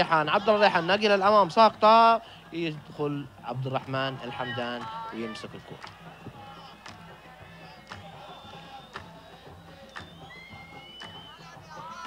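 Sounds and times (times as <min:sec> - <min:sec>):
high whistle-like tones: 0:08.1 - 0:12.0.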